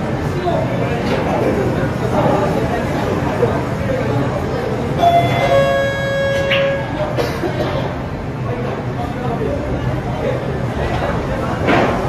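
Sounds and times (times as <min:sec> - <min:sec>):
held multi-pitch tone: 0:05.0 - 0:07.2.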